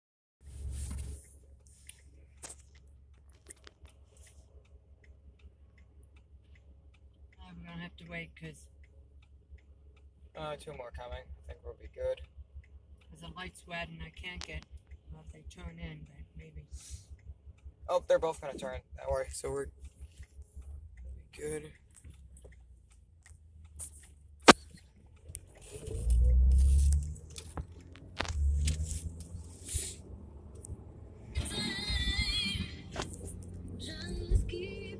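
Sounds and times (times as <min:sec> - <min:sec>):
low engine rumble: 0:00.4 - 0:34.9
turn signal clicking: 0:00.9 - 0:34.9
sharp loud click: 0:24.4 - 0:24.9
music with singing: 0:31.4 - 0:33.2, 0:33.8 - 0:34.9.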